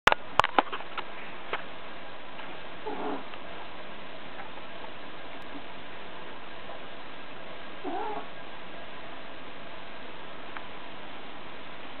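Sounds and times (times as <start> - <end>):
steady background hiss: 0.1 - 12.0
cat mewing faintly: 7.8 - 8.3.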